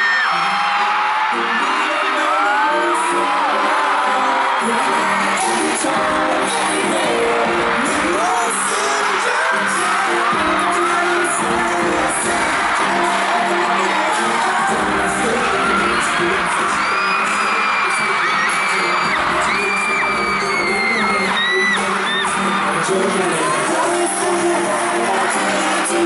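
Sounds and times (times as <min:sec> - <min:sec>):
fans screaming: 0:00.0 - 0:26.0
pop song over loudspeakers: 0:00.0 - 0:26.0.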